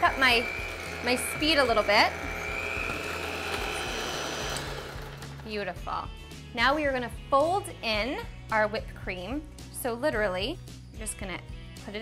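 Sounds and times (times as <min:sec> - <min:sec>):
electric hand mixer running: 0:00.0 - 0:05.5.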